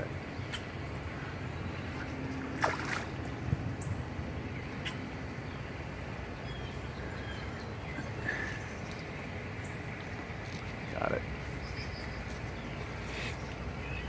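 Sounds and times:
low outdoor rumble: 0:00.0 - 0:14.0.

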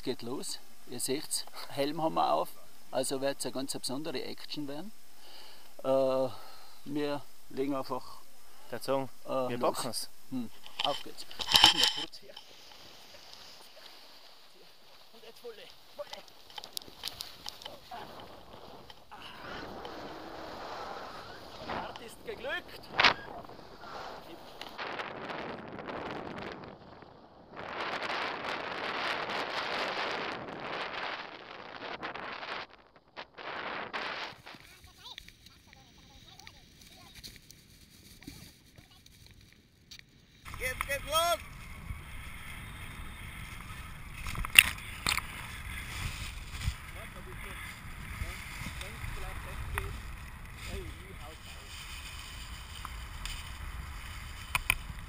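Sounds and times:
wind rushing on microphone: 0:12.7 - 0:35.3, 0:40.5 - 0:55.0
low rumble of airflow: 0:15.8 - 0:34.5.

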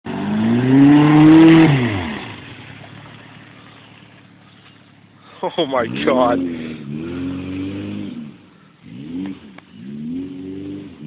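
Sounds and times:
car engine revving: 0:00.1 - 0:11.0.

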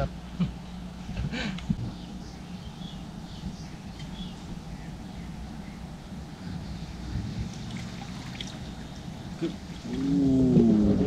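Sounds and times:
low rumbling: 0:00.0 - 0:11.0.

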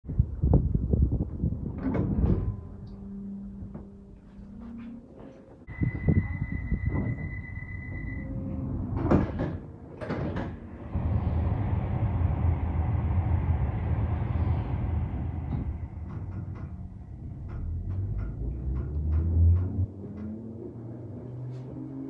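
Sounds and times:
train rushing and rumbling: 0:05.6 - 0:22.0
train doors closing: 0:05.7 - 0:20.4.

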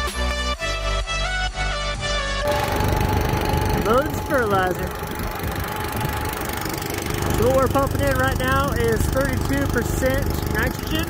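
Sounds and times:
background music: 0:00.0 - 0:05.3
small gasoline engine running: 0:02.4 - 0:11.0.

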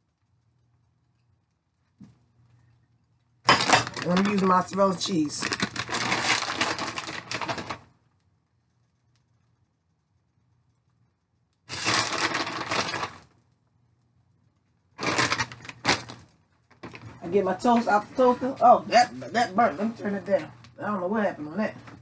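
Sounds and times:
plastic bag crinkling: 0:03.5 - 0:08.0, 0:11.7 - 0:13.4, 0:15.0 - 0:17.2.

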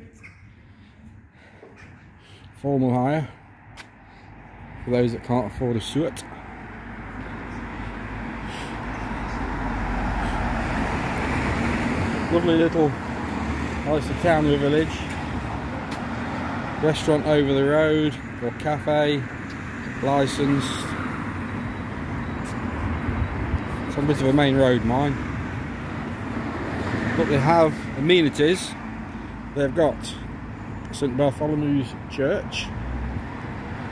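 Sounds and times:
car road noise: 0:00.0 - 0:33.9.

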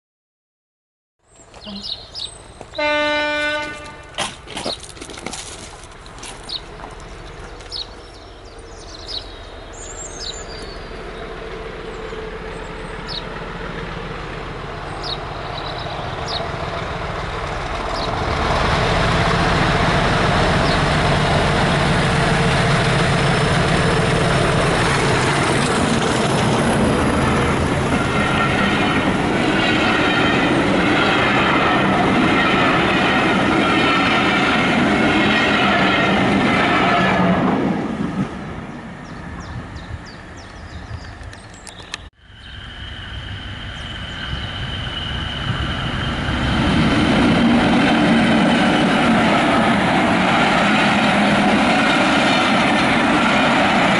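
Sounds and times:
diesel locomotive passing: 0:01.3 - 0:53.9
train wheels clickety-clack: 0:03.4 - 0:08.0.

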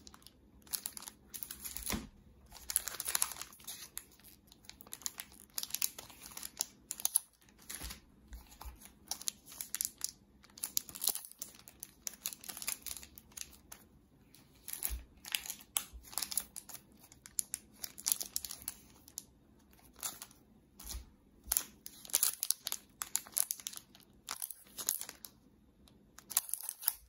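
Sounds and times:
plastic wrapping crinkling: 0:00.0 - 0:27.0.

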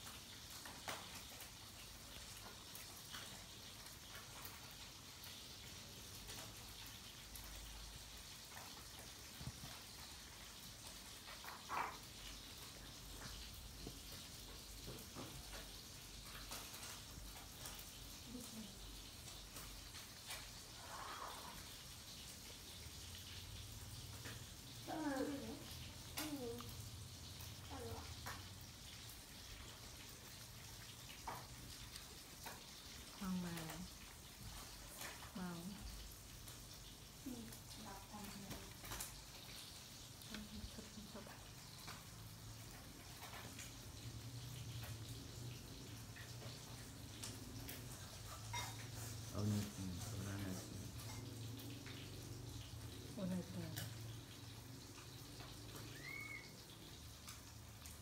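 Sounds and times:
faint steady hiss: 0:00.0 - 0:58.0.

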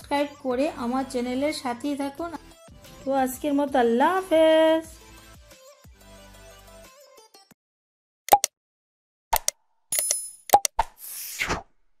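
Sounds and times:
quick clicks and pops: 0:08.3 - 0:08.5, 0:09.3 - 0:11.7.

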